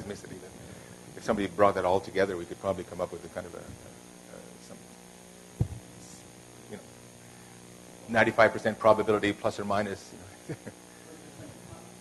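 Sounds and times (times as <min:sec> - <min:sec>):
electrical mains hum: 0:00.0 - 0:12.0
short low thump: 0:05.6 - 0:05.8.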